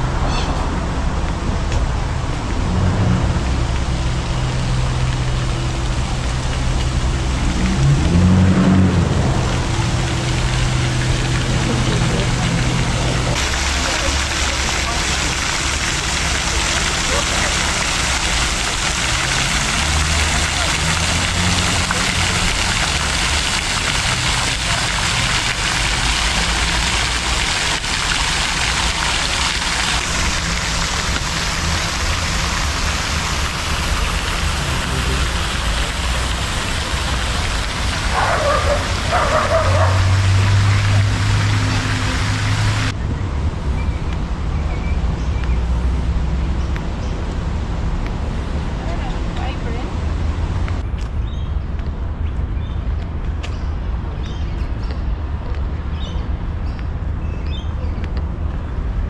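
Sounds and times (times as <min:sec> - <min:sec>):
fountain splashing into water: 0:00.0 - 0:59.0.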